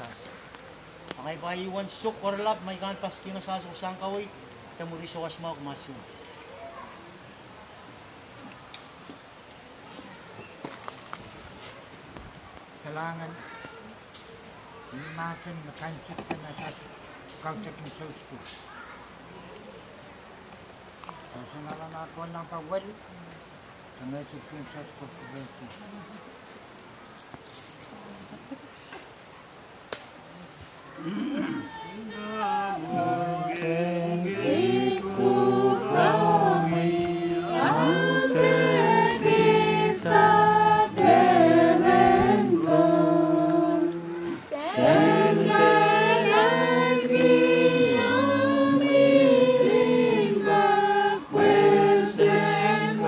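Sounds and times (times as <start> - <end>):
insects humming: 28.3 - 53.0
group singing unaccompanied in harmony: 32.0 - 53.0.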